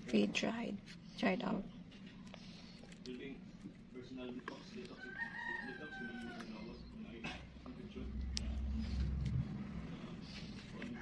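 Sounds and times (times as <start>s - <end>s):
rooster crowing: 4.9s - 6.6s.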